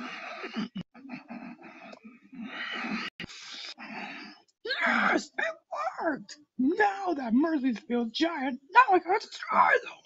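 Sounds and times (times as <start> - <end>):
person making breathy vocal sounds: 0.0 - 5.2.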